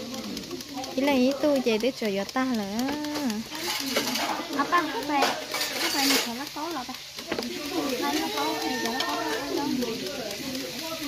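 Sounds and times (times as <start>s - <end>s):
women talking: 0.4s - 11.0s.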